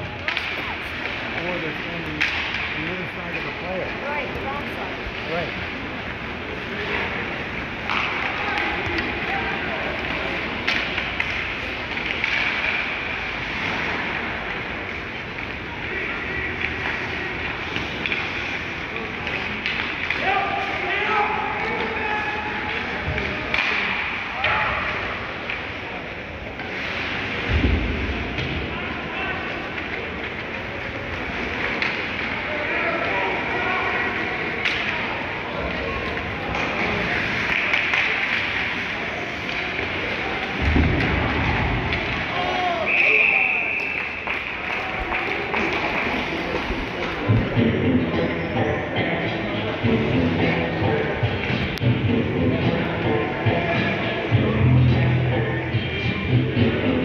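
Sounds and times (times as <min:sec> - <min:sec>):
ice rink ambience: 0:00.0 - 0:57.0
indistinct voices: 0:00.0 - 0:57.0
hockey stick and puck clicks: 0:02.0 - 0:02.9, 0:07.7 - 0:20.8, 0:29.5 - 0:33.2, 0:34.6 - 0:42.5, 0:43.8 - 0:47.5.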